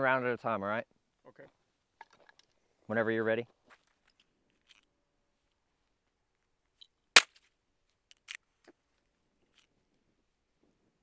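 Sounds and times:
pistol shot: 7.2s - 7.4s.

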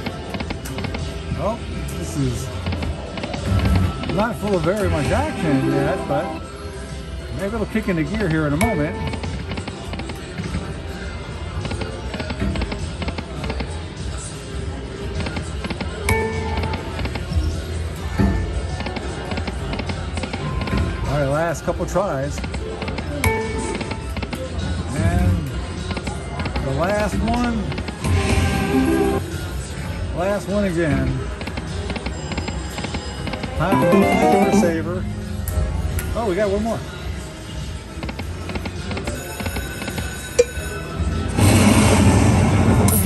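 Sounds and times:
low casino hum: 0.0s - 7.4s, 33.6s - 35.4s
casino background noise: 0.0s - 41.3s
slot machine electronic music: 3.5s - 6.5s, 33.5s - 35.2s
slot machine electronic clicks: 31.9s - 34.9s.

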